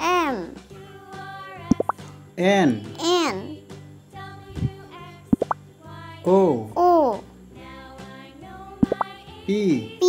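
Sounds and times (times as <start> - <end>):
children's background music: 0.0 - 10.0
cartoon rising pops: 1.7 - 2.0, 5.4 - 5.6, 8.8 - 9.1.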